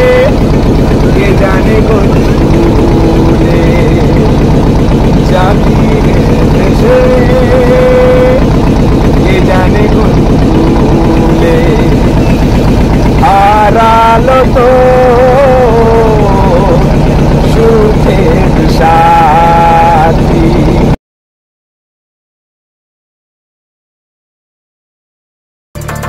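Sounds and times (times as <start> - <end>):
boat engine throbbing: 0.0 - 21.0, 25.8 - 26.0.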